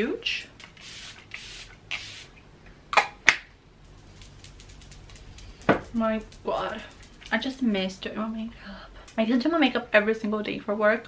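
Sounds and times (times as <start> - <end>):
spray bottle hiss: 0.6 - 2.3.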